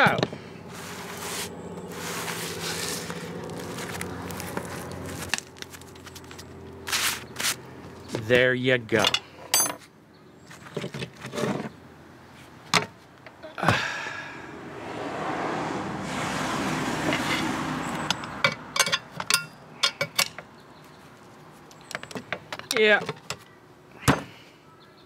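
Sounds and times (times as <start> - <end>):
passing vehicle rush: 0.0 - 7.6, 13.8 - 19.8.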